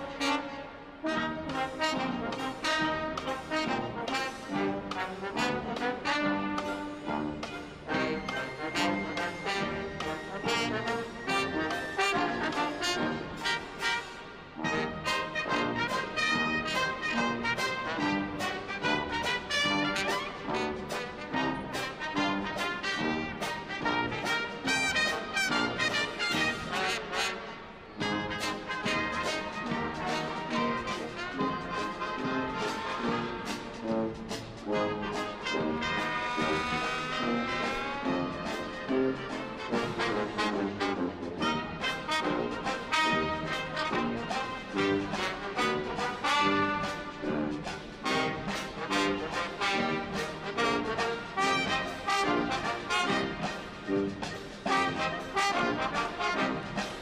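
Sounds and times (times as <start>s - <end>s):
trombones and trumpets: 0.0s - 57.0s
steady drum beat: 28.3s - 57.0s.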